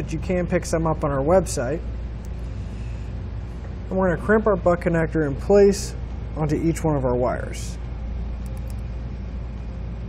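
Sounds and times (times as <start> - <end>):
workshop rumble: 0.0 - 10.0.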